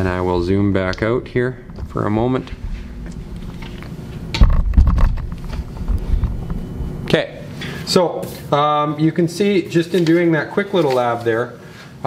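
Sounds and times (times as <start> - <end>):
steady low hum: 0.0 - 9.9
camera handling thumps: 4.4 - 6.4.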